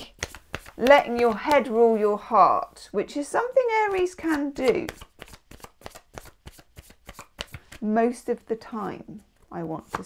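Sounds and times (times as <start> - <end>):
cards being shuffled: 0.0 - 2.0, 3.9 - 7.8, 9.3 - 10.0.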